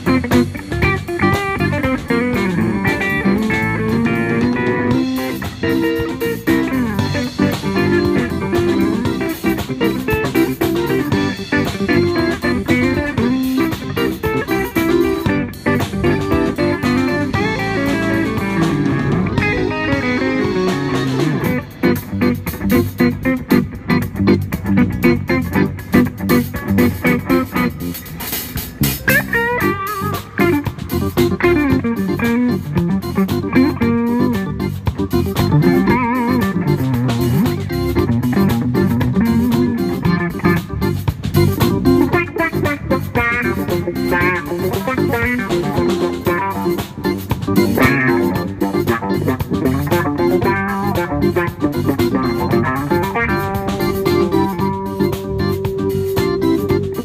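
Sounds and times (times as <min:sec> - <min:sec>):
electric guitar lead: 0:00.0 - 0:57.0
funk band playing: 0:00.0 - 0:57.0.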